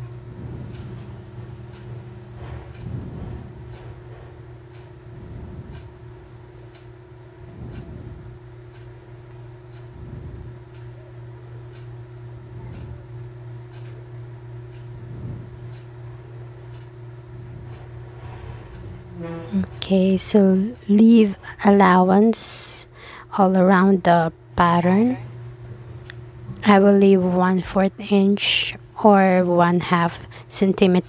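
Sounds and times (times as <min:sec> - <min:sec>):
steady low hum: 0:00.0 - 0:31.0
faint tick: 0:13.7 - 0:14.0.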